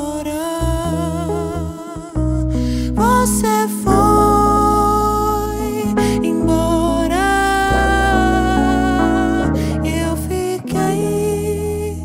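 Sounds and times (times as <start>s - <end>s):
band with electric bass: 0.0s - 12.0s
singer holding long note: 3.1s - 12.0s.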